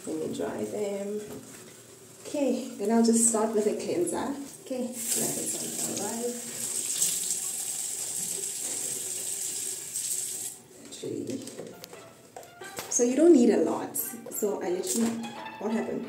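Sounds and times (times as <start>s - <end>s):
tap water running into sink: 5.0s - 10.6s.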